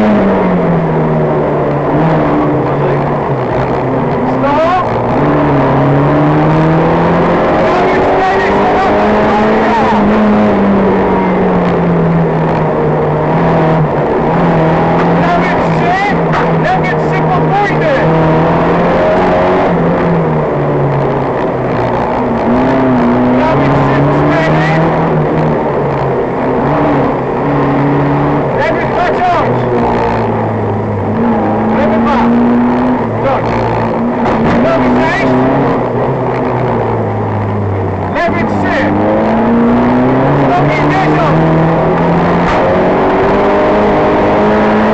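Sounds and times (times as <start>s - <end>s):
car engine revving: 0.0s - 44.9s.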